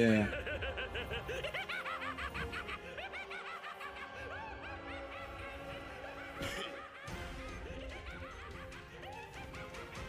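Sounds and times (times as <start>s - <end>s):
high-pitched laughter: 0.2s - 10.0s.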